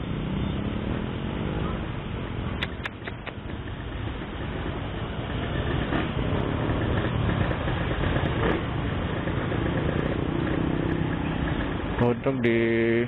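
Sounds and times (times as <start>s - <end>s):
motor scooters idling: 1.7s - 13.0s.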